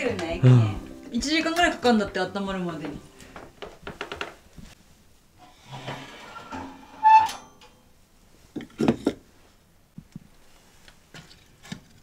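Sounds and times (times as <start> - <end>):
metal door scraping: 5.5 - 7.6
metal door squeak: 5.7 - 7.8.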